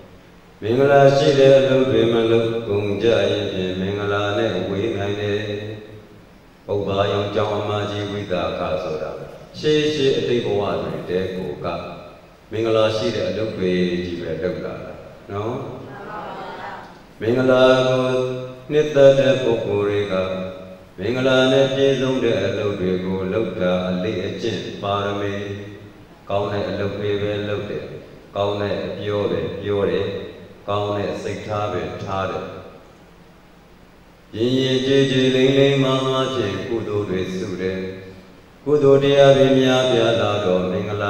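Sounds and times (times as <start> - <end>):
man chanting: 0.6 - 5.8, 6.7 - 16.6, 17.2 - 32.6, 34.3 - 41.0.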